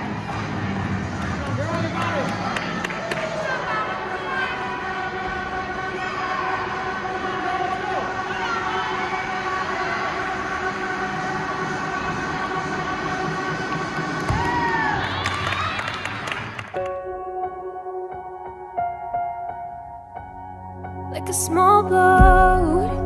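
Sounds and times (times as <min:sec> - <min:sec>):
crowd chatter: 0:00.0 - 0:14.3
cheering and whistles: 0:14.2 - 0:16.6
background music: 0:16.1 - 0:23.0.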